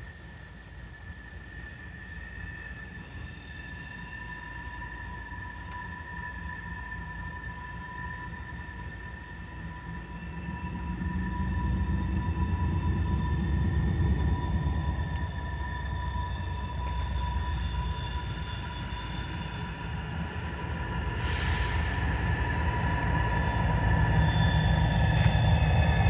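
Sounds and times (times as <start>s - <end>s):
diesel locomotive rumble: 10.7s - 26.0s.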